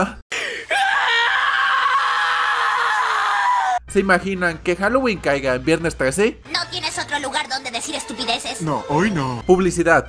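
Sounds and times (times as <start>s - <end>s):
anguished scream: 0.6s - 3.8s.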